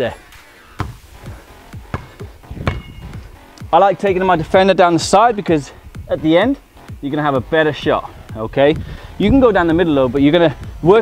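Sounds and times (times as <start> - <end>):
background music: 0.0 - 11.0
basketball bouncing on stone: 0.8 - 1.1, 1.9 - 3.3.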